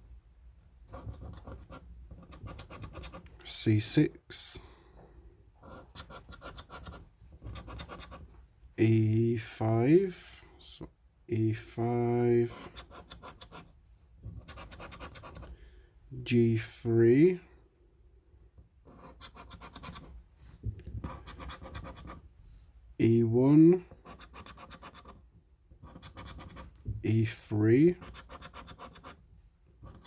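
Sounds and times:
scratch card being scratched: 0:00.9 - 0:03.3, 0:05.7 - 0:08.2, 0:12.5 - 0:13.7, 0:14.4 - 0:15.5, 0:18.9 - 0:20.1, 0:21.0 - 0:22.2, 0:24.0 - 0:25.2, 0:25.8 - 0:26.7, 0:28.0 - 0:29.2.

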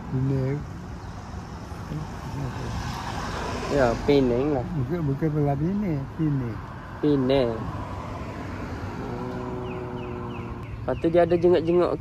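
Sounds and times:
road traffic rumble: 0:00.0 - 0:12.0
vehicle engine humming: 0:00.0 - 0:12.0.

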